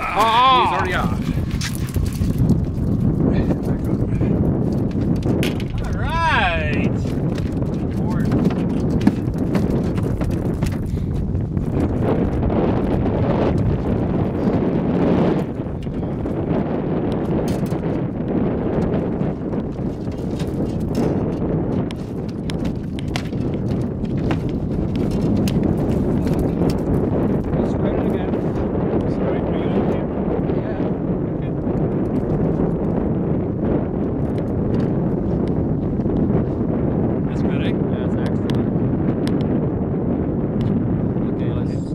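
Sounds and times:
wind rumble on microphone: 0:00.0 - 0:41.9
clicks and knocks in aluminum boat: 0:01.3 - 0:12.3, 0:17.1 - 0:18.0, 0:18.7 - 0:28.2.

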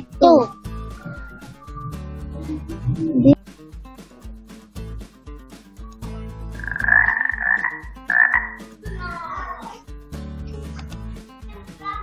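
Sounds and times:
game background music with beat: 0:00.0 - 0:09.1, 0:09.7 - 0:11.8
animal calls: 0:00.8 - 0:02.8, 0:06.6 - 0:08.7.

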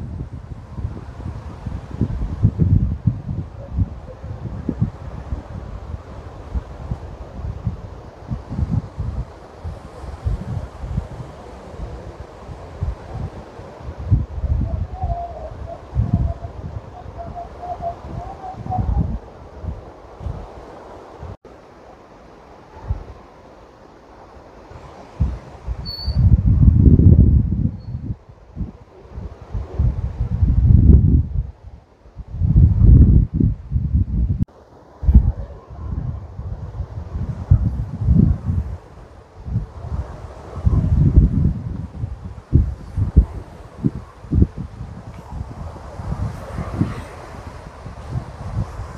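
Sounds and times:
wind buffeting microphone: 0:00.0 - 0:21.4, 0:22.6 - 0:23.5, 0:24.2 - 0:48.9.

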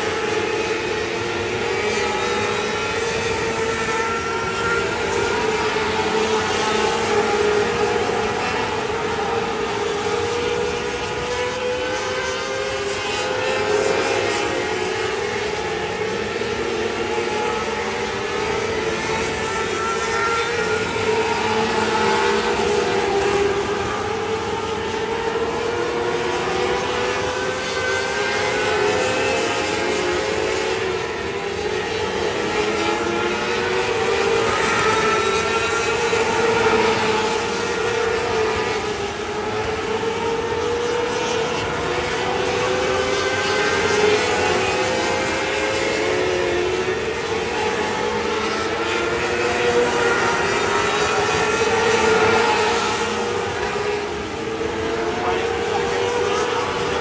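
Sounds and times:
race car engines revving high: 0:00.0 - 0:57.0.

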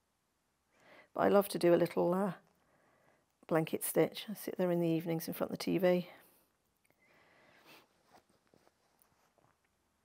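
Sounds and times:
soft fabric rustles: 0:07.4 - 0:10.0.

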